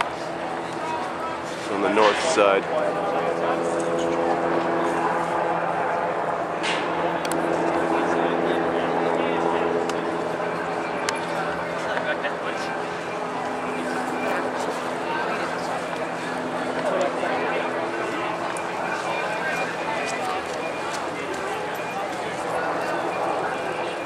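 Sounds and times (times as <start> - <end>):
large engine idling: 0.0 - 24.0.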